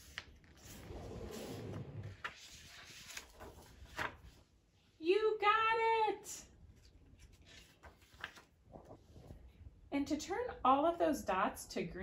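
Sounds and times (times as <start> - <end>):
hand rubbing across page: 0.0 - 3.6.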